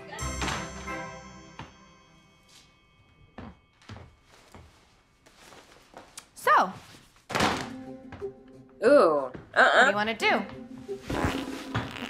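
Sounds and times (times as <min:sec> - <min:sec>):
faint background music: 0:06.4 - 0:12.0.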